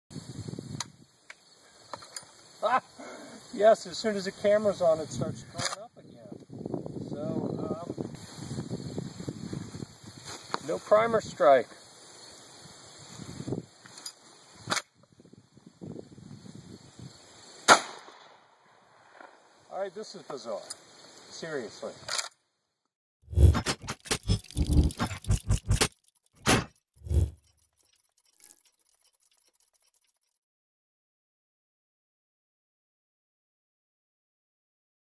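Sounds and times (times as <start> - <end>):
shotgun shots: 17.7 - 18.3.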